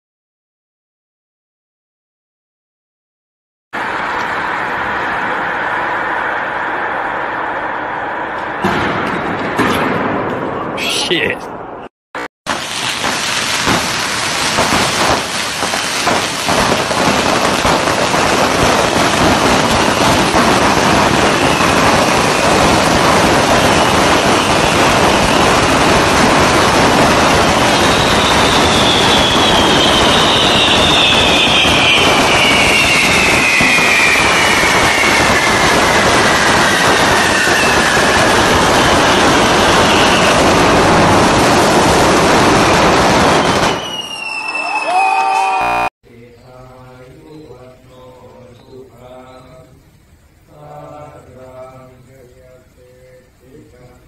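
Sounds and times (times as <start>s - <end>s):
falling firework whistle: 12.5s - 45.9s
fireworks crackling and hissing: 12.5s - 45.9s.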